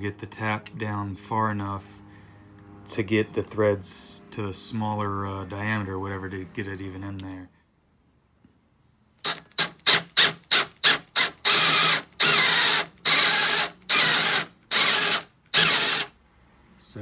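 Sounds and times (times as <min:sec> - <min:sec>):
electric drill boring metal: 0:09.2 - 0:16.1.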